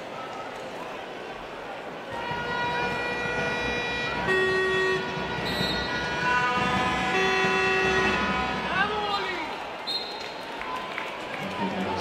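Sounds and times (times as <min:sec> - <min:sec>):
crowd noise: 0:00.0 - 0:12.0
horns blowing long notes: 0:02.1 - 0:09.6.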